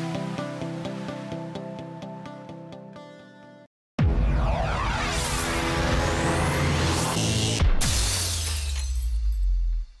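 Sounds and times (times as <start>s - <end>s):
glass shattering: 7.8s - 9.9s.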